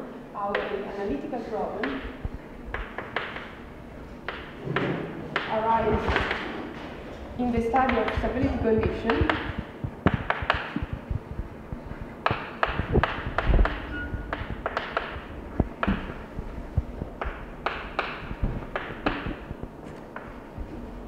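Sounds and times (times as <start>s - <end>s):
dull low thuds: 8.2s - 14.6s.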